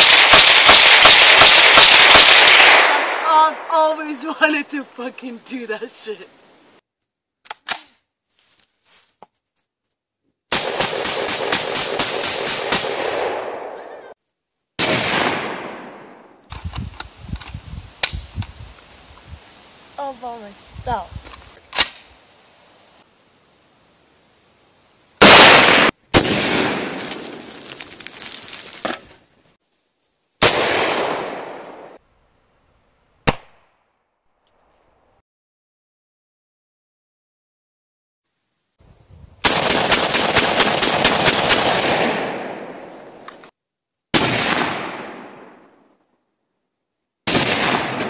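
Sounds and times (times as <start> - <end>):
sharp gunshot: 0.0 - 3.3, 14.8 - 16.2, 25.2 - 27.1, 30.4 - 32.0, 33.2 - 33.7, 44.2 - 45.6, 47.3 - 48.0
loud gun blast with echo: 0.0 - 3.7, 14.8 - 16.2, 25.2 - 27.0, 44.2 - 45.6, 47.3 - 48.0
rapid gunshots with echo: 0.0 - 3.7, 10.5 - 13.7, 39.4 - 42.6.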